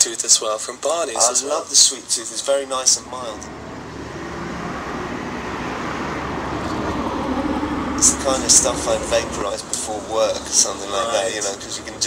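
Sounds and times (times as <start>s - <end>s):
road traffic noise: 1.2s - 12.0s
car running close by: 2.7s - 12.0s.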